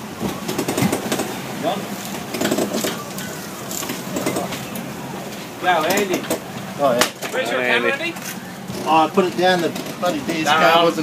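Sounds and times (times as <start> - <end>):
boat engine idling: 0.0 - 11.0
men talking: 1.6 - 2.0, 4.1 - 11.0.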